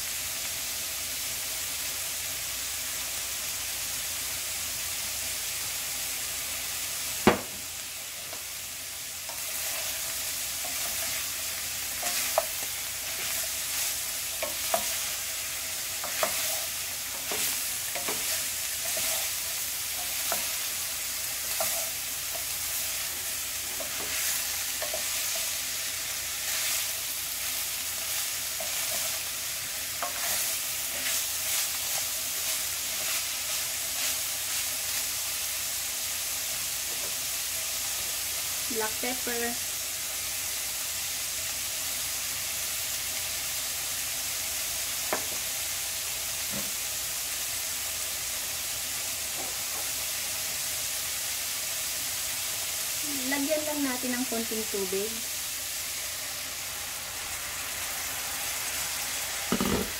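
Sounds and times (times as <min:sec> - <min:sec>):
food sizzling in a frying pan: 0:00.0 - 0:59.9.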